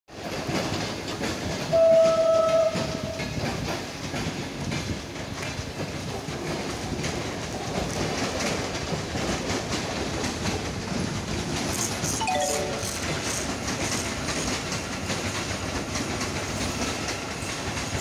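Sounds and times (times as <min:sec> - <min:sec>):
train wheels clicking over rail joints: 0:00.1 - 0:12.2, 0:13.1 - 0:18.0
electric train horn: 0:01.8 - 0:03.1.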